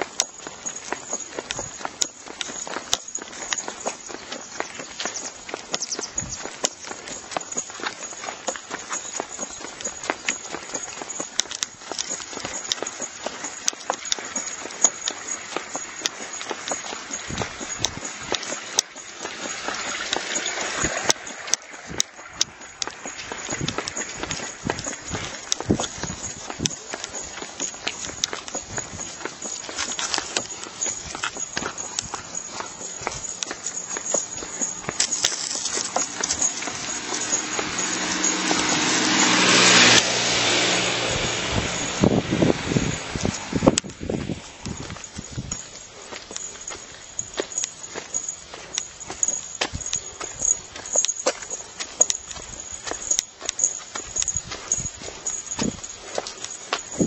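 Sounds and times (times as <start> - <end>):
footsteps on a lane: 0.0 - 57.0.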